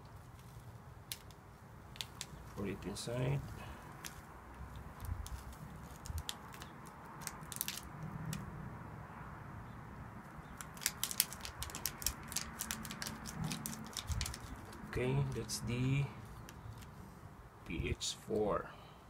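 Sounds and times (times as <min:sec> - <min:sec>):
paper sachet crackling and clicking: 0:00.0 - 0:08.5, 0:10.5 - 0:15.6.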